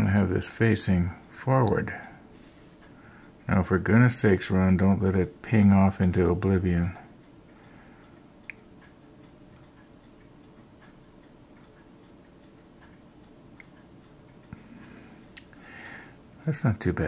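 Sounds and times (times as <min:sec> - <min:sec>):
low steady room hum: 0:00.0 - 0:17.0.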